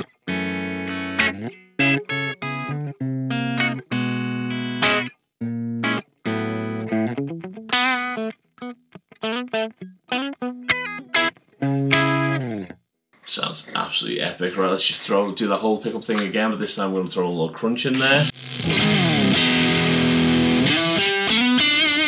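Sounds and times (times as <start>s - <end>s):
electric guitar chord stabs: 0.0s - 8.3s, 18.0s - 22.0s
electric guitar vibrato note: 18.3s - 22.0s.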